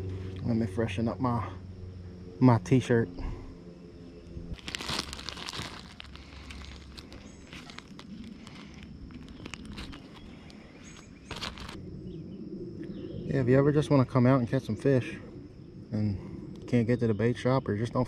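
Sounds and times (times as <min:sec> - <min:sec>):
plastic bag crinkling: 0:04.5 - 0:11.8.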